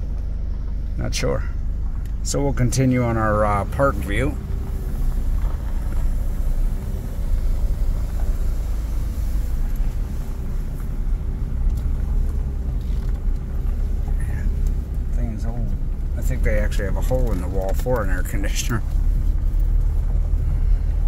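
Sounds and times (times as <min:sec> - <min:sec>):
vehicle rumbling on gravel: 0:00.0 - 0:21.0.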